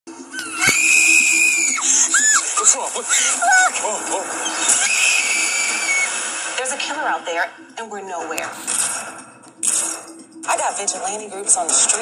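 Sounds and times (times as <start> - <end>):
woman screaming: 0.4 - 3.8, 4.8 - 6.1.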